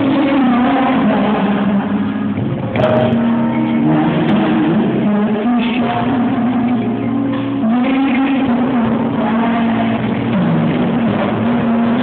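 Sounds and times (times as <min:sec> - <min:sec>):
live rock band playing: 0:00.0 - 0:12.0
singer holding long notes: 0:00.0 - 0:12.0.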